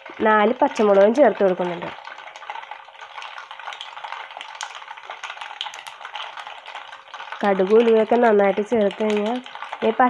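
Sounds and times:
oil sizzling in a pan: 0.0 - 10.0.

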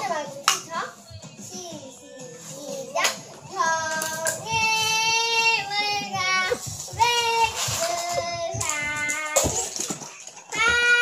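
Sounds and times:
young child singing: 0.0 - 11.0.

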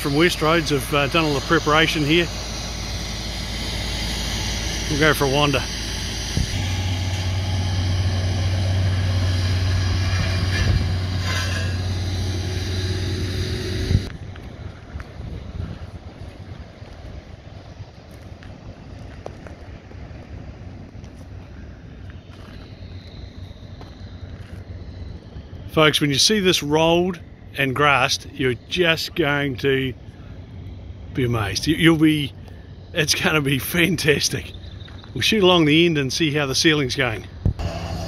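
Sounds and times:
diesel truck engine idling: 0.0 - 38.0
outdoor background noise: 0.0 - 38.0.

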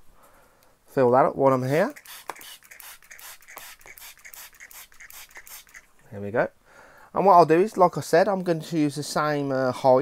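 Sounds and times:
spray bottle hissing squirts: 1.8 - 6.0.

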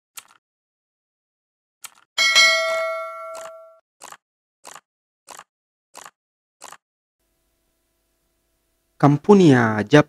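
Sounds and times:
bright bell ding: 2.2 - 3.8.

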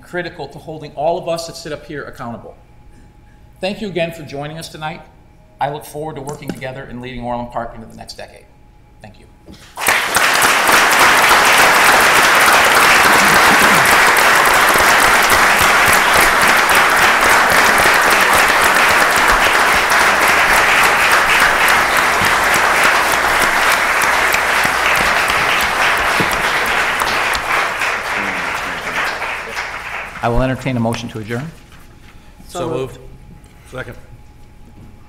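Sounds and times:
audience applause: 9.7 - 30.8.

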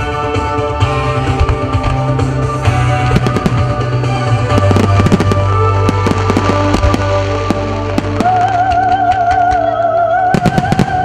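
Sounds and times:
loud music: 0.0 - 9.8
fireworks bangs and cracks: 1.2 - 9.6.

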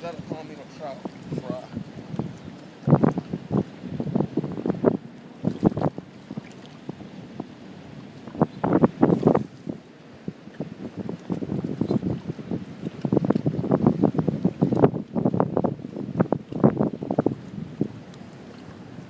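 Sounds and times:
water splashing and lapping: 0.0 - 19.0
wind buffeting microphone: 0.0 - 19.0.

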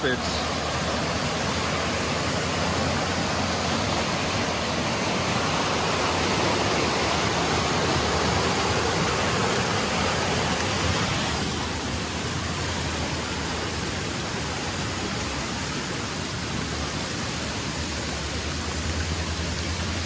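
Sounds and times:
creek rushing over rocks: 0.0 - 20.0.

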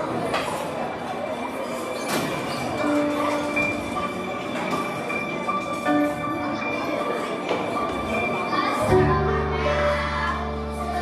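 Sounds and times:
audience murmur and rustling: 0.0 - 11.0
held musical notes: 2.8 - 11.0.

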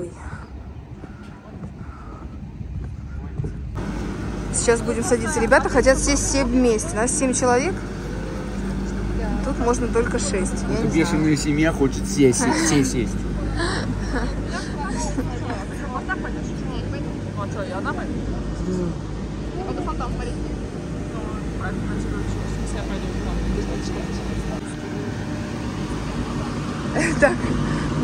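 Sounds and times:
chairlift mechanical hum: 3.7 - 28.0.

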